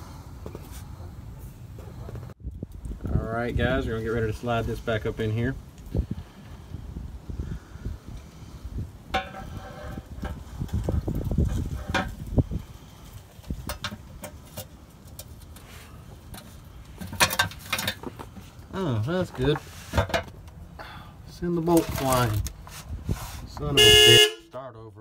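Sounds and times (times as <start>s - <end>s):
metal pan clunking and scraping: 9.1s - 10.4s, 11.7s - 12.2s.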